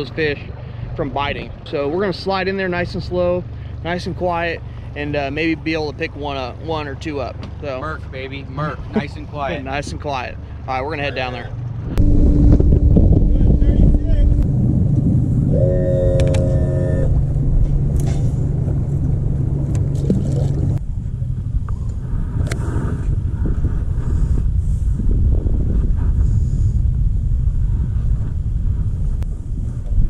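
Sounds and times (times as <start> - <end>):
outboard motor droning: 0.0 - 24.9
wind on microphone: 11.7 - 30.0.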